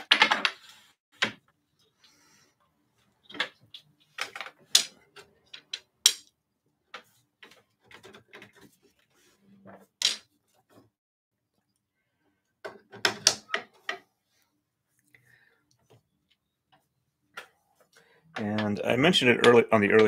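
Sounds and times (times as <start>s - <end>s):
wooden bobbins clacking: 0.0s - 2.2s, 3.2s - 8.8s, 9.6s - 10.9s, 12.6s - 14.1s, 18.3s - 20.0s.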